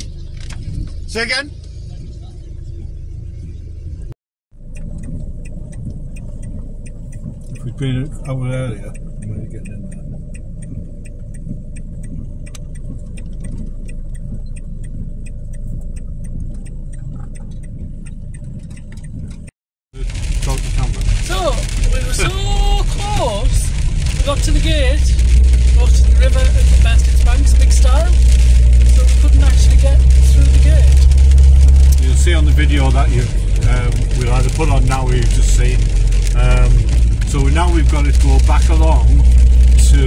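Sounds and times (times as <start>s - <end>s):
van engine rumbling: 0.0s - 40.0s
faint ticks: 4.6s - 19.5s.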